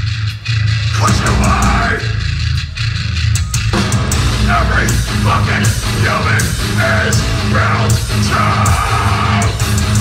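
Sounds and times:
distorted guitars: 0:00.0 - 0:10.0
hardcore band playing loudly: 0:00.0 - 0:10.0
shouted vocal: 0:04.5 - 0:09.6.

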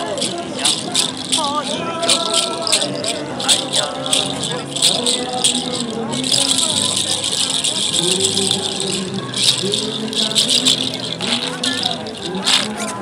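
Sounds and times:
seed-shell rattle shaken: 0:00.0 - 0:13.0.

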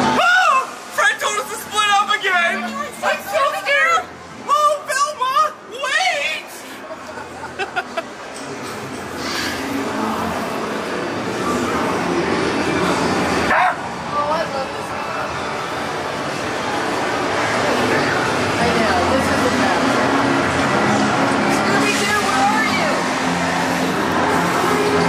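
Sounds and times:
dense noisy background: 0:00.0 - 0:25.0.

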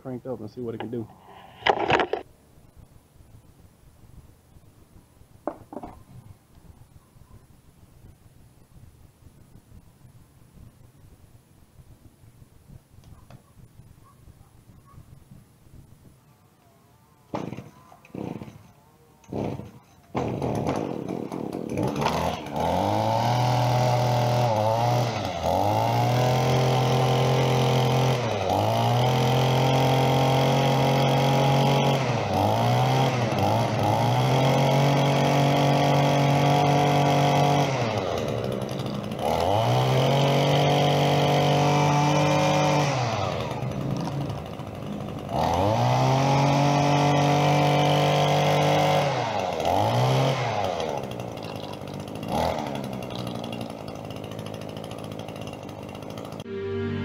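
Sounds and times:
string trimmer engine revving: 0:00.6 - 0:02.3, 0:17.4 - 0:57.0.

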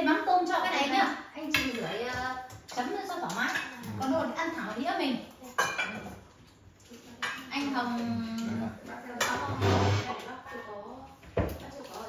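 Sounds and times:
dishes and cutlery clinking: 0:01.4 - 0:10.5.

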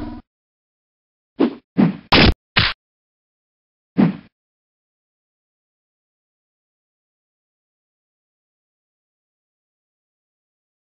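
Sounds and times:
cartoon fight hit effects: 0:02.1 - 0:02.8.

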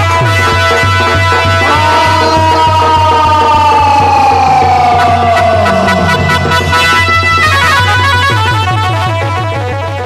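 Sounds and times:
man singing long sliding note: 0:01.5 - 0:07.9
low drum beat: 0:01.6 - 0:09.0.

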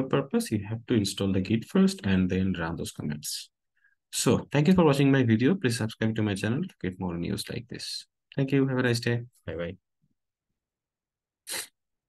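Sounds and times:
breathy puff: 0:11.5 - 0:11.8.

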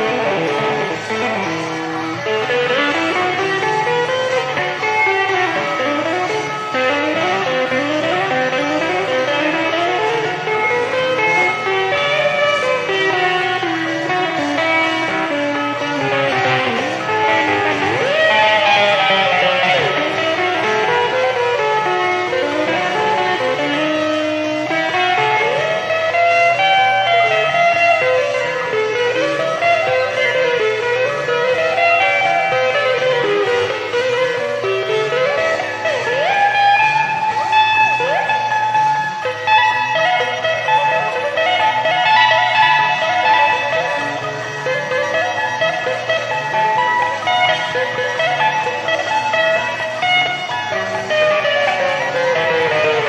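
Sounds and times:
electric guitar lead: 0:00.0 - 0:53.0
rock band playing: 0:00.0 - 0:53.0.

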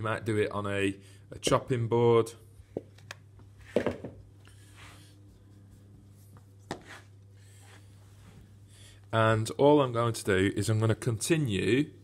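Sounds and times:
steady low hum: 0:00.0 - 0:12.0
hands rubbing dough: 0:03.4 - 0:12.0.

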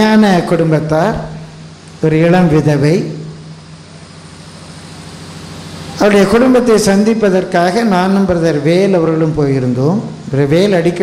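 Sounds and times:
room noise hum and hiss: 0:00.0 - 0:11.0
person speaking: 0:05.9 - 0:11.0.

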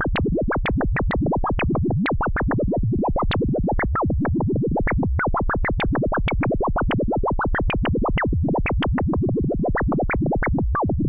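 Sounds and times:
synthesizer sweeping blips: 0:00.0 - 0:11.0.

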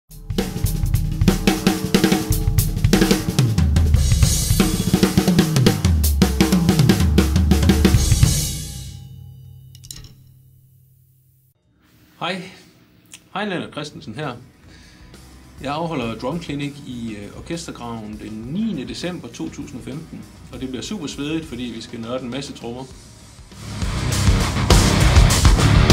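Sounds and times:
drum kit played fast: 0:00.1 - 0:09.2, 0:15.2 - 0:25.9
cymbal crashes: 0:00.1 - 0:09.7
tom fills: 0:00.2 - 0:10.1.

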